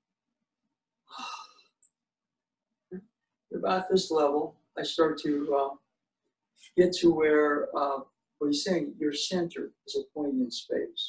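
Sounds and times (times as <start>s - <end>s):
man sighing: 1.1s - 1.6s.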